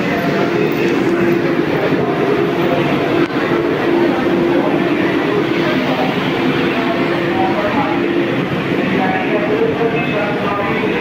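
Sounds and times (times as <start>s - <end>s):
train equipment humming and hissing: 0.0s - 11.0s.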